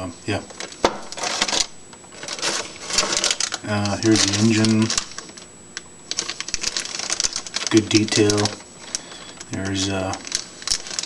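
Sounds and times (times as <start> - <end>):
plastic bags crinkling: 0.5 - 11.0
plastic parts clicking: 0.6 - 11.0.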